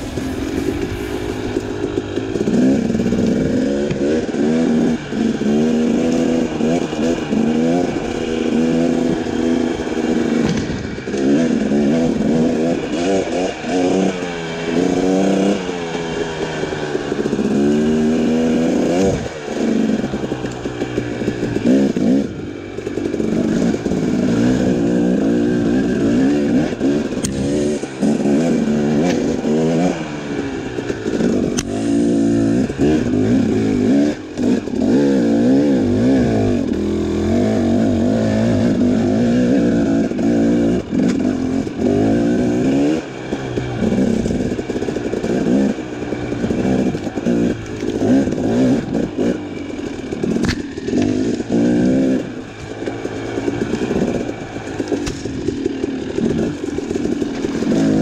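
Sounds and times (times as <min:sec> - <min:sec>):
two-stroke engine revving: 0:00.0 - 0:58.0.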